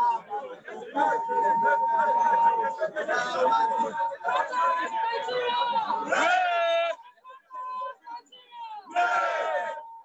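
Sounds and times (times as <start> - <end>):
protesters shouting a chant: 0.0 - 10.0.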